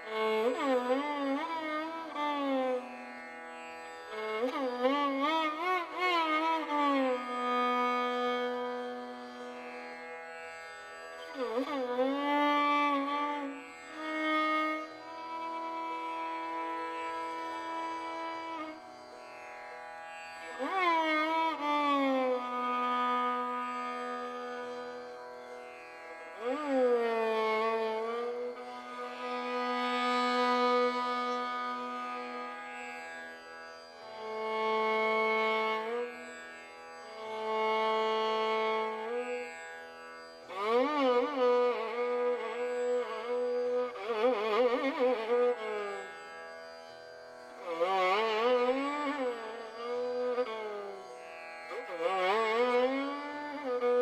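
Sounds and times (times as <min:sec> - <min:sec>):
violin with sliding glides: 0:00.0 - 0:54.0.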